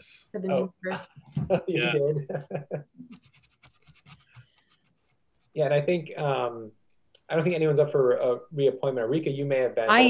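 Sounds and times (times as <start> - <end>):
person laughing softly: 1.4 - 3.1
faint scratching and rustling: 2.4 - 6.1.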